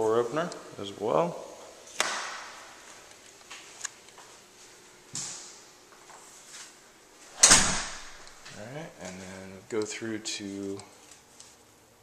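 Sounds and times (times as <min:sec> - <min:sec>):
door closing bang: 0:07.4 - 0:08.4.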